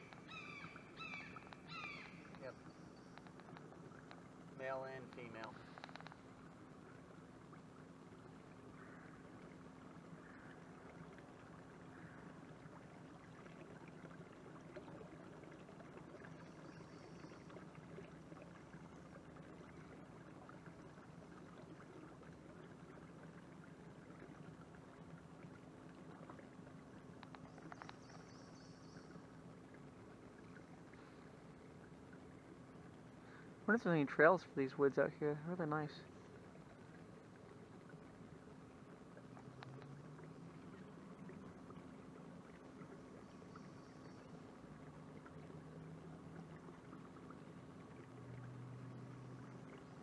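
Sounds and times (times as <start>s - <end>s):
canoe gliding through water: 0.0s - 50.0s
steady low hum: 0.0s - 50.0s.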